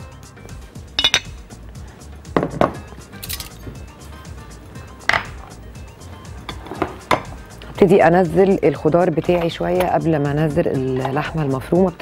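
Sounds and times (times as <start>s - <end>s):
quiet background music: 0.0s - 12.0s
glass clinking and knocking: 1.0s - 1.4s, 2.4s - 3.6s, 5.1s - 5.5s.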